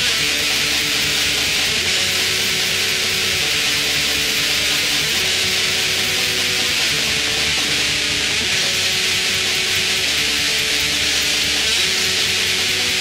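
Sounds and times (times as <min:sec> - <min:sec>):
distorted black metal music: 0:00.0 - 0:13.0.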